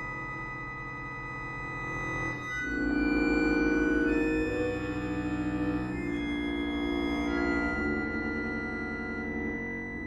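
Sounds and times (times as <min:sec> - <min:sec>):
accordion chords: 0:02.5 - 0:10.0.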